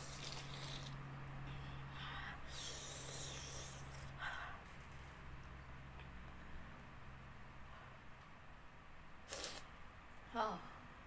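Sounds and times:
low steady hum: 0:00.0 - 0:11.0
person breathing hard: 0:01.5 - 0:04.8.

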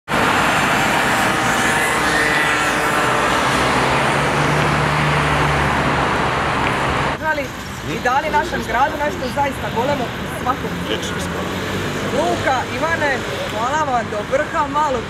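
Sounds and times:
vehicle engine hum: 0:00.1 - 0:13.6
cars passing: 0:00.1 - 0:15.0.

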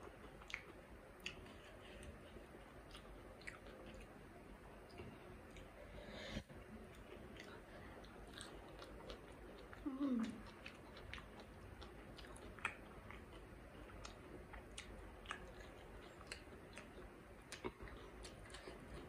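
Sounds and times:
close chewing with soft crunches: 0:00.0 - 0:05.9, 0:06.5 - 0:19.0
person humming: 0:09.8 - 0:10.4.

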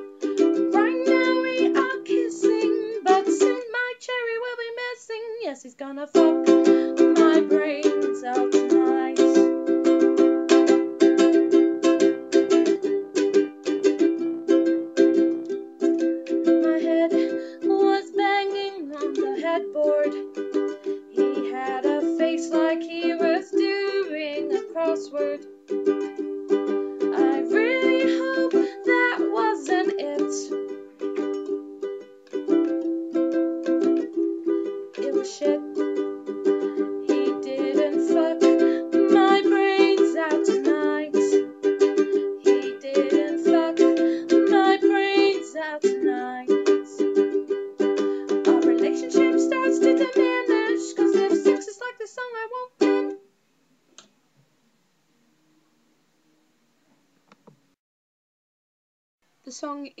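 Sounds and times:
ukulele strumming chords: 0:00.0 - 0:04.8, 0:06.1 - 0:53.4
woman singing: 0:00.0 - 0:09.6, 0:16.3 - 0:25.5, 0:27.0 - 0:30.7, 0:34.9 - 0:36.0, 0:36.6 - 0:47.3, 0:48.2 - 0:53.2.

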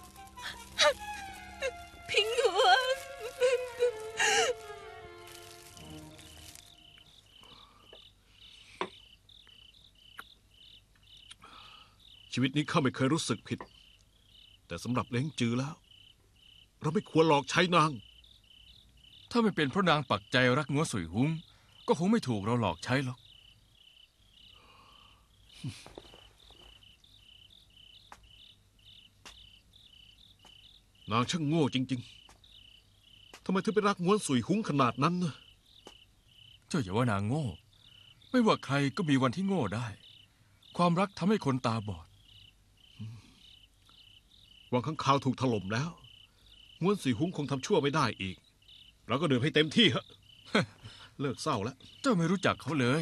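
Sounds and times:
soft music: 0:00.0 - 0:07.1
crickets chirping: 0:00.0 - 0:53.0.

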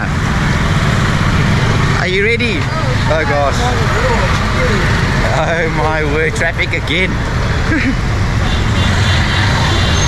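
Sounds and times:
motorbike and scooter engines: 0:00.0 - 0:10.0.

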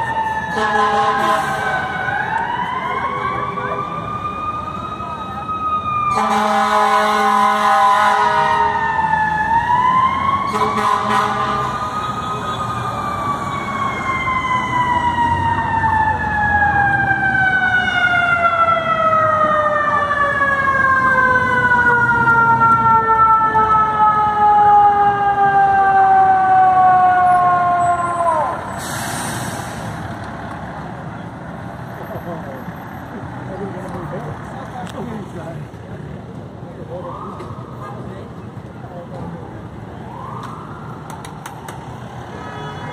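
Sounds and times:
idling vehicles rumbling: 0:00.0 - 0:42.9
burst of hiss: 0:28.8 - 0:30.0.

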